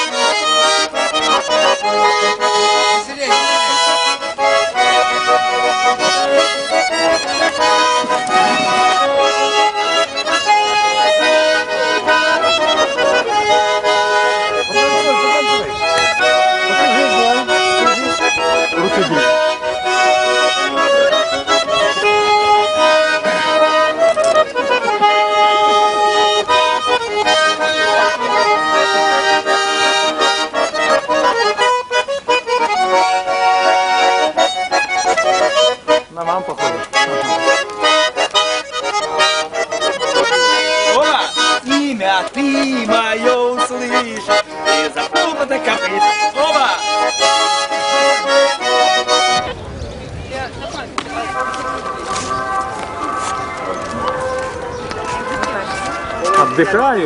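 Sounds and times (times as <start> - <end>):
button accordion folk tune: 0.0 - 49.6, 50.3 - 57.0.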